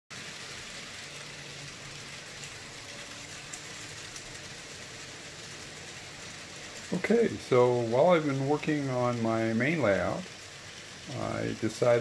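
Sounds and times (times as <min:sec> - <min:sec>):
model train motors whirring: 0:00.1 - 0:12.0.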